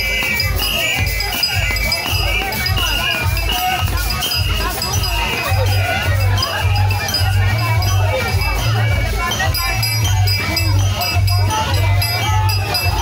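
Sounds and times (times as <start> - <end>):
band drumming driving beat: 0.0 - 13.0
jingling rattles: 0.0 - 13.0
voices singing: 0.0 - 13.0.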